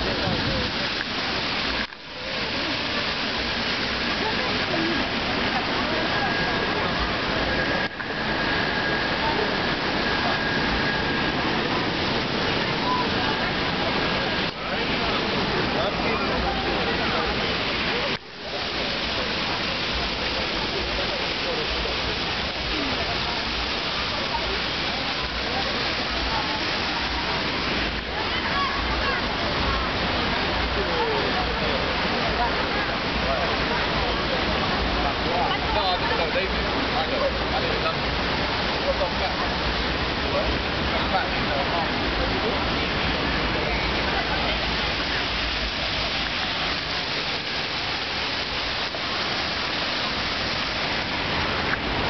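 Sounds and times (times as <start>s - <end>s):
fountain water splashing: 0.0s - 52.0s
people talking: 0.0s - 52.0s.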